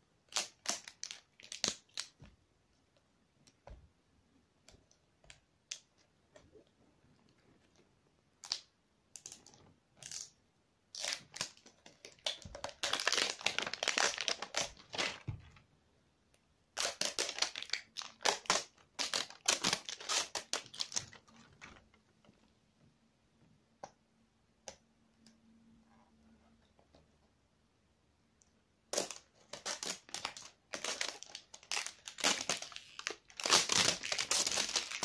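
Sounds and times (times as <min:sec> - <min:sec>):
packaging crinkling and tearing: 0:11.0 - 0:15.3, 0:16.8 - 0:21.4, 0:29.0 - 0:35.0.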